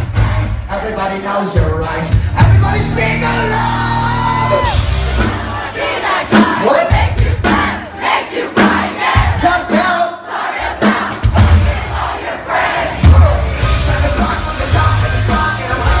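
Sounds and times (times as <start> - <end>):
live rock band playing: 0.0 - 7.9, 10.8 - 11.9, 12.8 - 16.0
crowd shouting and singing along: 0.0 - 16.0.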